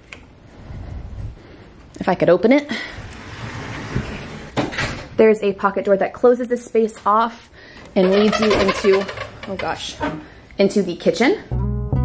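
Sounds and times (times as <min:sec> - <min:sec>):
pocket door sliding open: 0:03.1 - 0:05.0.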